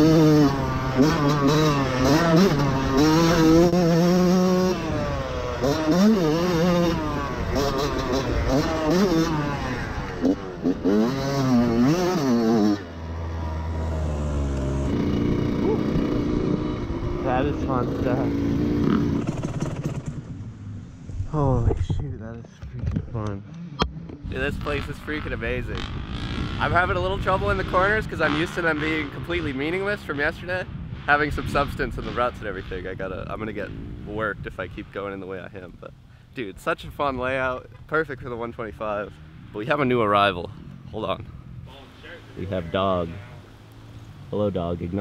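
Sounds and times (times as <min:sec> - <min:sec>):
dirt bike engine revving: 0:00.0 - 0:21.0, 0:23.6 - 0:34.8.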